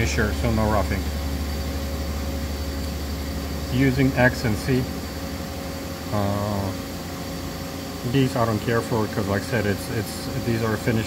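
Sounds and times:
machine hum with hiss: 0:00.0 - 0:11.0.

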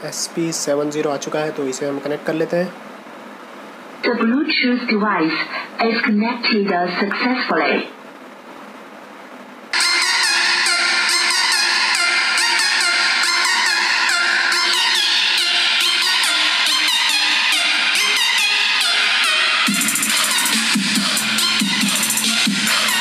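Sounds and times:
music from a soundbar: 0:09.8 - 0:23.0.

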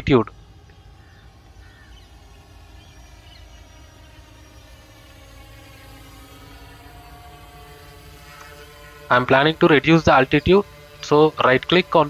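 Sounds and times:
drone propellers humming: 0:00.0 - 0:12.0.

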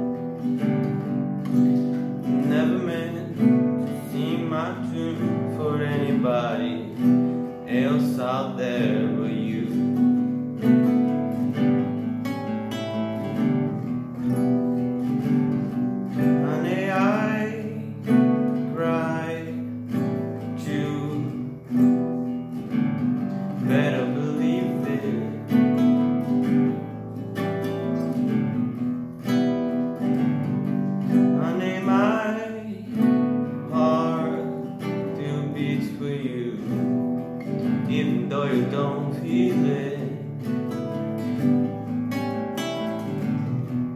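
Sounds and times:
acoustic guitar strumming: 0:00.0 - 0:43.9
man singing: 0:01.9 - 0:11.8, 0:16.1 - 0:26.9, 0:30.1 - 0:41.8.

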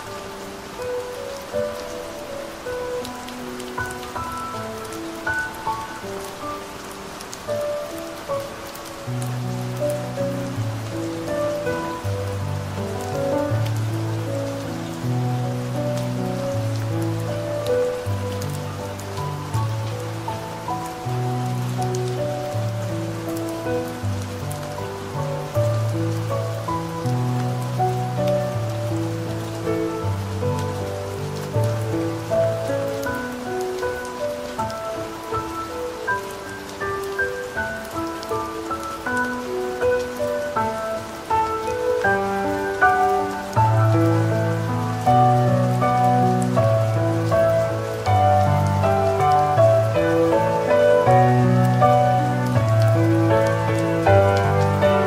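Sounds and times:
slow solo piano music: 0:00.0 - 0:55.0
soft rain: 0:00.0 - 0:55.0.

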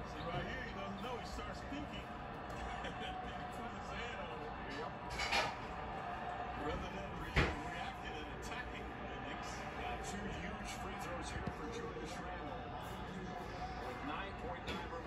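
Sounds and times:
arena crowd noise on tv: 0:00.0 - 0:15.0.

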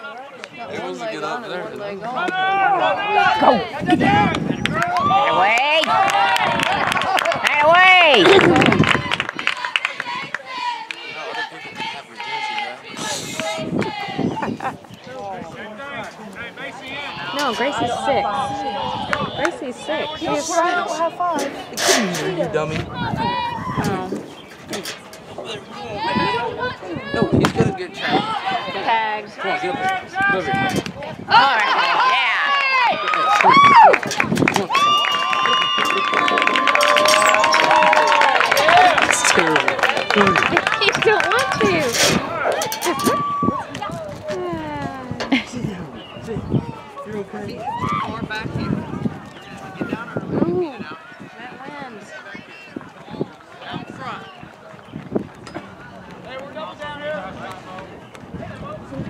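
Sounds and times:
spectators cheering and yelling: 0:02.2 - 0:14.4, 0:15.8 - 0:24.1, 0:25.4 - 0:45.2, 0:46.2 - 0:59.0
hand clapping: 0:33.1 - 0:41.8.

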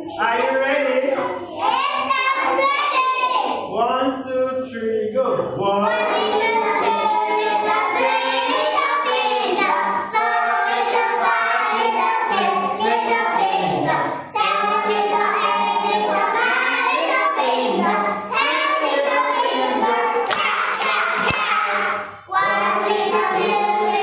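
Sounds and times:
children singing in unison: 0:01.1 - 0:03.7, 0:05.8 - 0:24.0.

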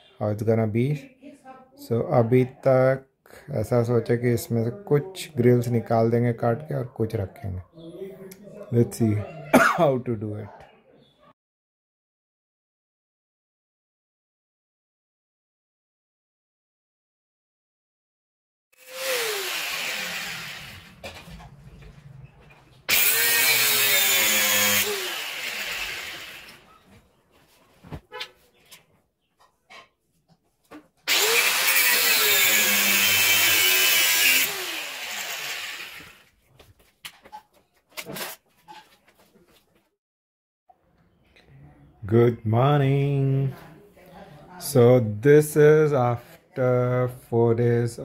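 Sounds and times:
angle grinder cutting steel: 0:18.8 - 0:21.0, 0:22.9 - 0:26.7, 0:31.1 - 0:36.2.

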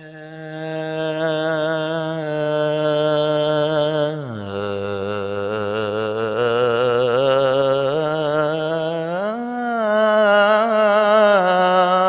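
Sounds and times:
man chanting into a microphone: 0:00.0 - 0:12.0.

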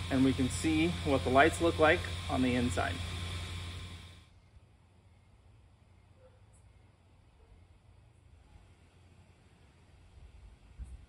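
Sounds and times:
blower fan humming: 0:00.0 - 0:04.6.

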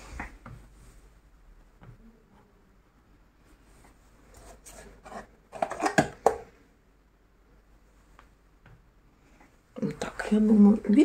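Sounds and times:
light rustling and rubbing: 0:03.4 - 0:05.8.

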